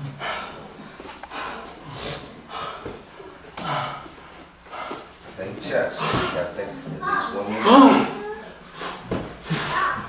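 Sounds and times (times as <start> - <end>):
man breathing hard: 0.0 - 5.2.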